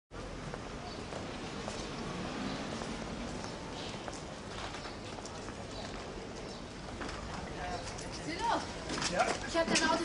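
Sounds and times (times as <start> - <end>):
street background noise: 0.1 - 10.0.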